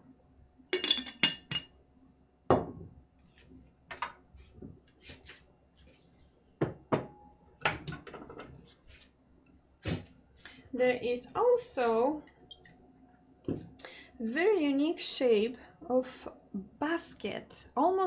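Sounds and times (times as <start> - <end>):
ceramic clinking: 0.8 - 1.8.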